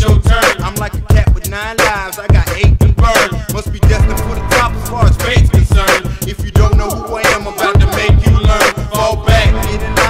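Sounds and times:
deep kick drums: 0.0s - 7.0s, 7.8s - 10.0s
rapping over a beat: 0.0s - 10.0s.

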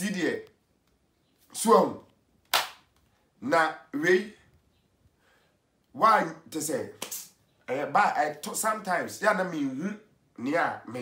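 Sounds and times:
hand clap: 2.5s - 2.9s, 7.0s - 7.3s.

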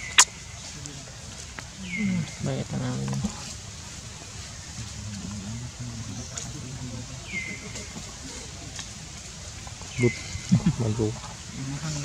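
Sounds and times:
low voices murmuring: 0.6s - 12.0s.

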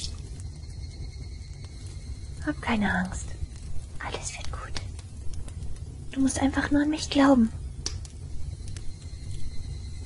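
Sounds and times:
steady low hum: 0.0s - 10.0s
faint clicks: 1.6s - 6.4s, 7.8s - 9.4s
woman whispering: 2.4s - 3.4s, 4.0s - 5.0s, 6.1s - 7.6s.

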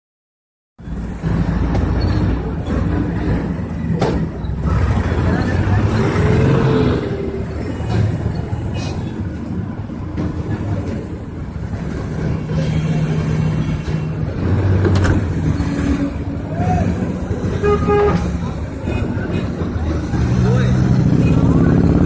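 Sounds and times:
bus and vehicles idling: 0.8s - 22.0s
faint crowd voices: 1.0s - 22.0s.

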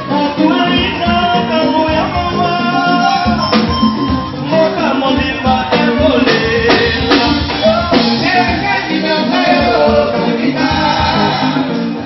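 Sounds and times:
drums and bass beat: 0.0s - 12.0s
voices singing together: 4.3s - 12.0s.

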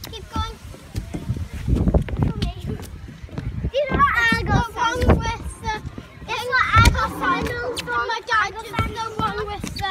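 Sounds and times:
young child vocalizing: 6.8s - 8.1s.

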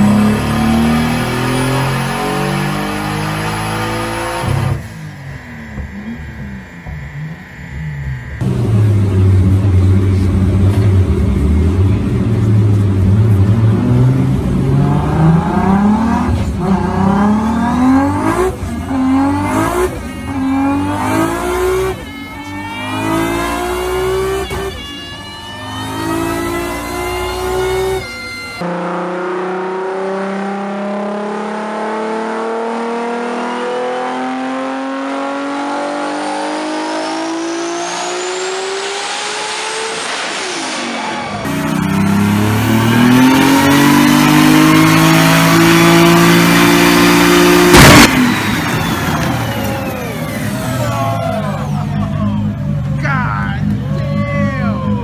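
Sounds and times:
car engine revving on dyno: 0.0s - 53.0s
sharp engine bang: 47.5s - 50.2s.

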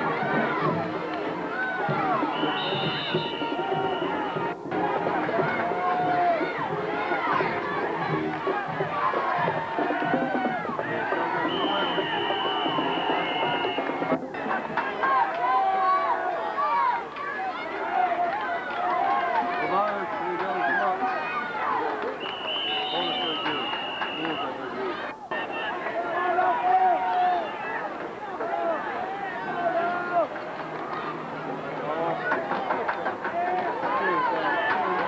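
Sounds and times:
music: 0.0s - 26.0s, 27.5s - 35.0s
crowd talking and shouting: 0.0s - 35.0s.

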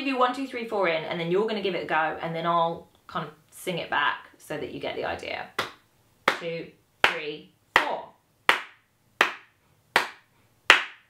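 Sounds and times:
hand claps: 5.6s - 7.2s, 7.8s - 11.0s.

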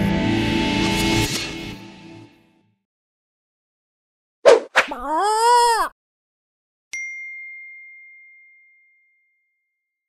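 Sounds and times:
high ringing ding: 6.9s - 9.6s.

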